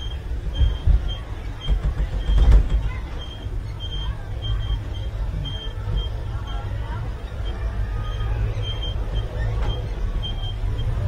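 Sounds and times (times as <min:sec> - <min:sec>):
ride car rumbling on track: 0:00.0 - 0:11.0
short high-pitched squeaks: 0:00.0 - 0:11.0.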